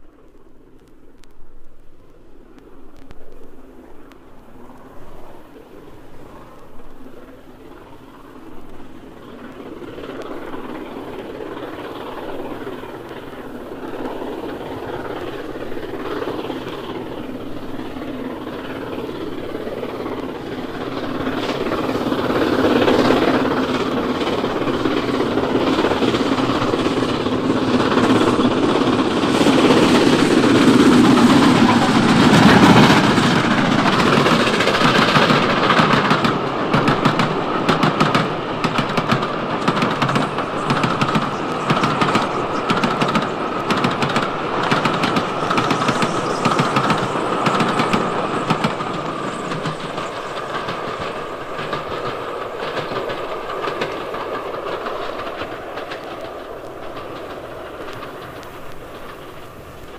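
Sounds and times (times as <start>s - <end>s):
train wheels clattering: 5.8s - 59.9s.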